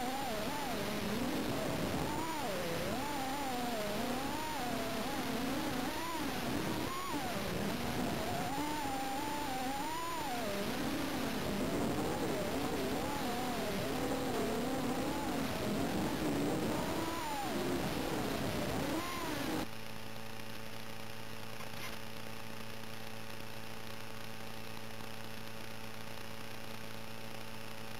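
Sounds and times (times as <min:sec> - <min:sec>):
quadcopter motors whining: 0:00.0 - 0:19.7
steady hum: 0:00.0 - 0:27.9.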